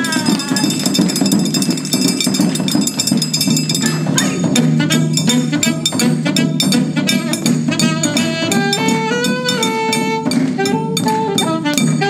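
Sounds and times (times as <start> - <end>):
small drums and gong struck fast: 0.0 - 12.0.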